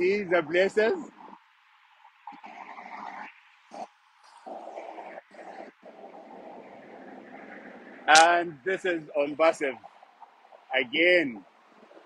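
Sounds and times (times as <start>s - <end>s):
faint highway traffic hiss: 0.0s - 12.0s.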